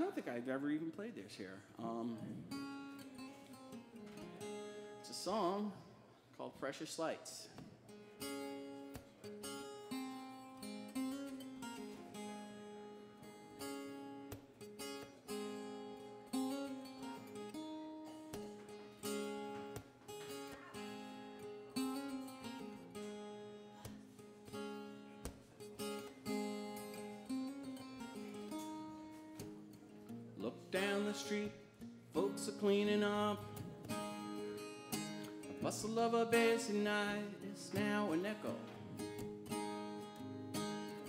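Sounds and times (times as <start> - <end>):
acoustic guitar strumming: 0.0 - 5.8, 7.8 - 41.0.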